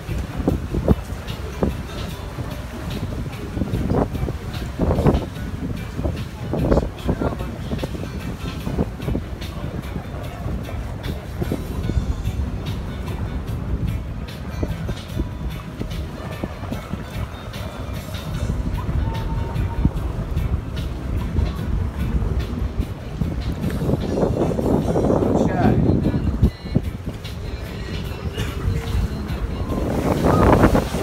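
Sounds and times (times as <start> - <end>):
boat engine and water rumble: 0.0 - 31.0
music playing: 0.0 - 31.0
wind buffeting microphone: 0.0 - 31.0.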